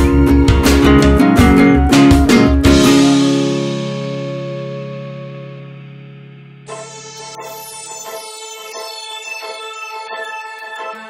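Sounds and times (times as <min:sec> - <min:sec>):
strummed guitar chord ringing: 0:00.0 - 0:07.4.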